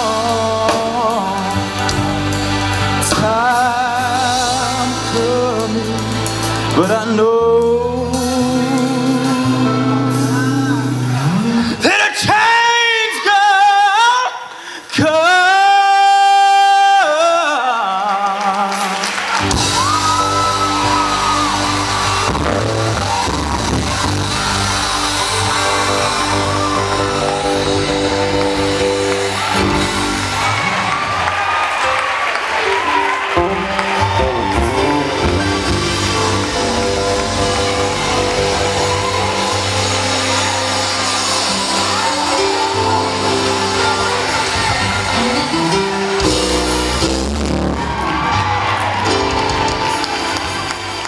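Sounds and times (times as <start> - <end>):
live rock band playing: 0.0 - 12.8, 18.6 - 51.0
crowd whooping and shouting: 9.5 - 14.4, 18.0 - 51.0.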